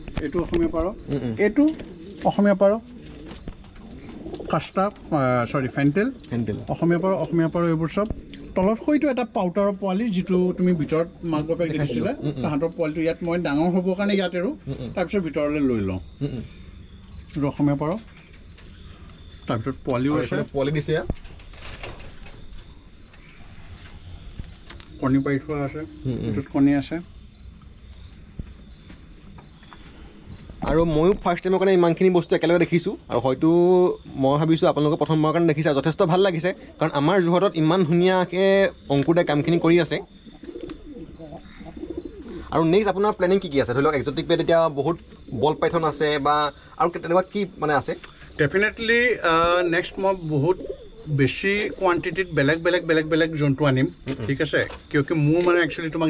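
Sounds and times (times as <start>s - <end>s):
pigeons cooing: 0.0s - 31.2s, 32.4s - 56.0s
crickets trilling: 0.0s - 56.0s
low background hum: 0.0s - 56.0s.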